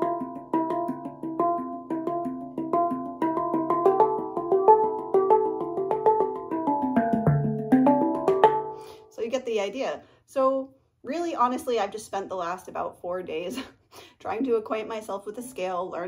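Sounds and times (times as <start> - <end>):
handpan notes: 0.0 - 9.0.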